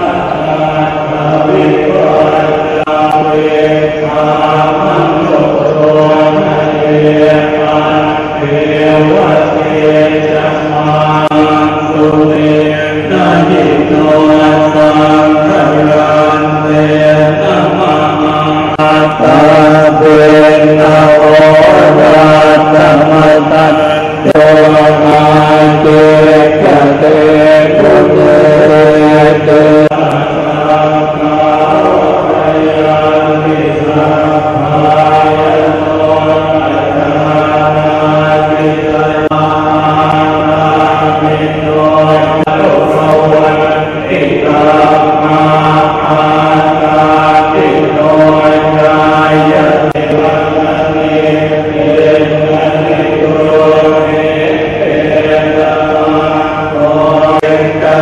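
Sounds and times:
monks chanting in unison: 0.0s - 58.0s.

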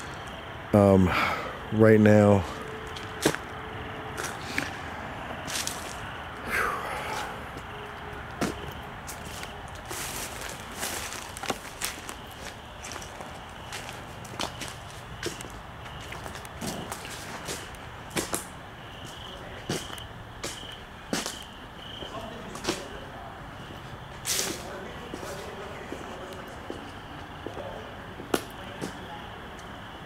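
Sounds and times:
footsteps on brush and concrete: 2.8s - 4.8s, 5.4s - 6.3s, 7.1s - 23.0s, 23.6s - 29.1s.

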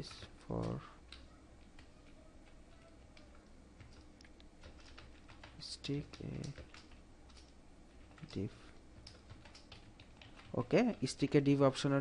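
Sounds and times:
man speaking: 0.0s - 1.0s, 5.6s - 6.6s, 8.2s - 8.7s, 10.5s - 12.0s
computer keyboard typing: 0.1s - 11.6s.

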